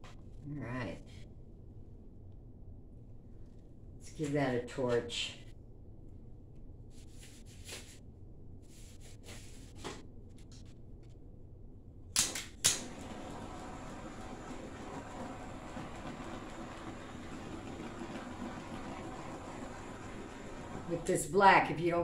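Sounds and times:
torch flame hissing: 12.8s - 21.3s.

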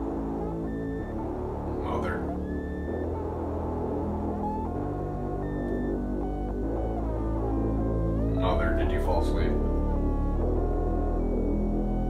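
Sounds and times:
dark ambient music: 0.0s - 12.0s.

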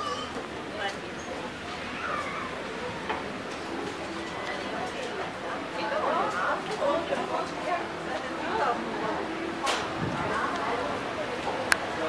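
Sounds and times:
murmur of background voices: 0.0s - 12.0s.

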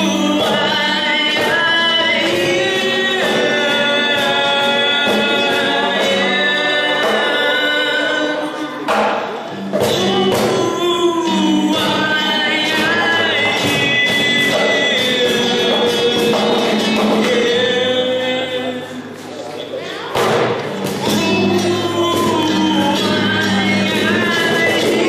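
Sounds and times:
voices singing in harmony: 0.0s - 19.0s
acoustic guitar: 0.0s - 25.0s
cajon percussion: 0.0s - 25.0s.

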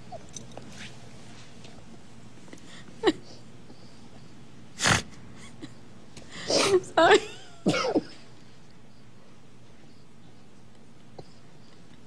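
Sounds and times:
person coughing: 6.5s - 6.8s, 7.6s - 8.2s.

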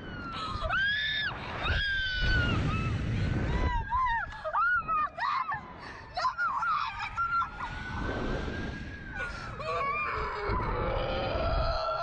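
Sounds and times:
wind roaring on microphone: 0.0s - 12.0s.

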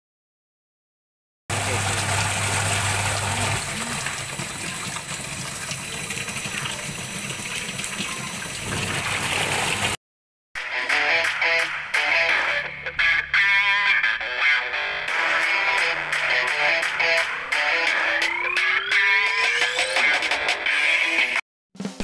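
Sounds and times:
washing machine motor hum: 1.5s - 10.0s
water churning and sloshing: 1.5s - 10.0s.

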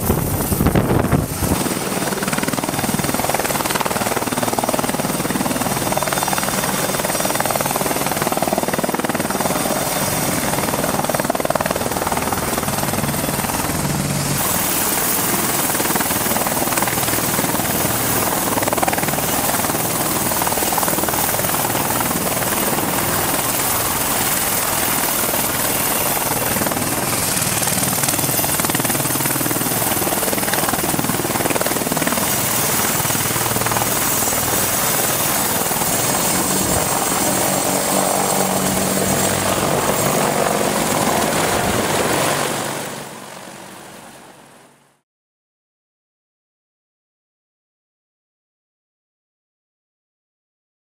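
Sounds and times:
high turbine whine: 0.0s - 42.0s
helicopter rotor chopping: 0.0s - 43.2s
helicopter engine noise: 0.0s - 44.2s.

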